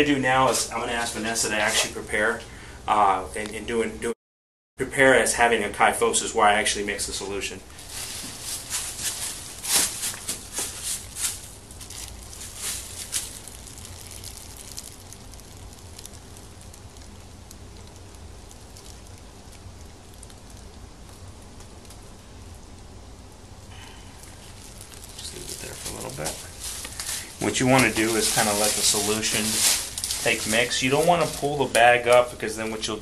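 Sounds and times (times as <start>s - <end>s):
low steady hiss of foam: 0.0s - 4.2s, 4.8s - 33.0s
plastic bag crinkling: 7.7s - 20.8s, 23.8s - 32.8s.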